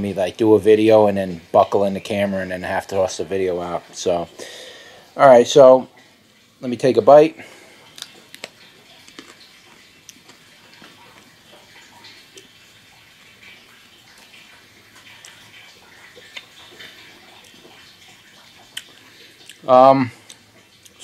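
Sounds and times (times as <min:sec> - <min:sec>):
chewing with wet crunches: 0:07.7 - 0:21.0.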